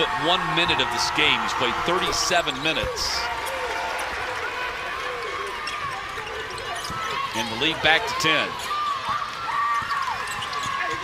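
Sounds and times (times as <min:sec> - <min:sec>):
arena noise: 0:00.0 - 0:11.0.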